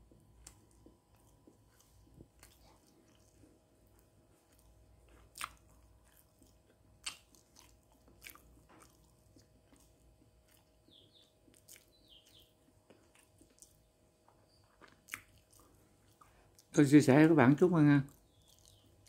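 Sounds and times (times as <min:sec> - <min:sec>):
chewing and mouth sounds: 0:00.1 - 0:16.7, 0:18.1 - 0:19.0.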